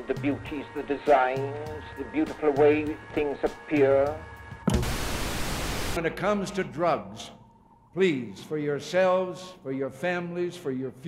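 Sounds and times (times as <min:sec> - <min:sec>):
loud static-like hiss: 0:04.7 - 0:06.0.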